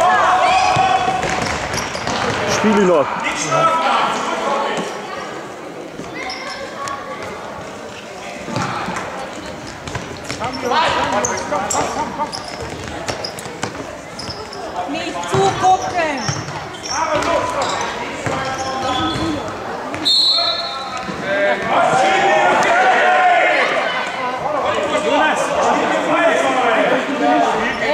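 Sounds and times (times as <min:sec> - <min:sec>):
children and spectators shouting: 0:00.0 - 0:01.2
referee's whistle: 0:20.0 - 0:21.0.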